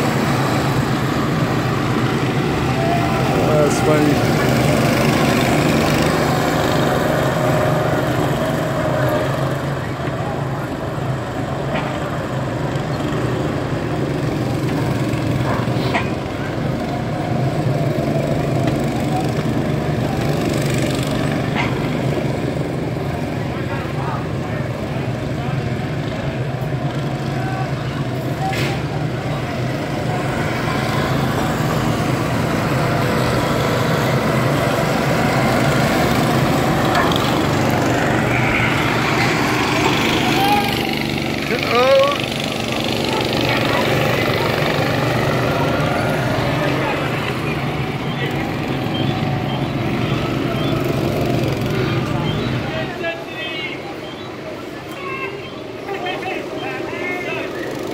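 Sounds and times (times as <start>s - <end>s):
go-kart engines running: 0.0s - 57.9s.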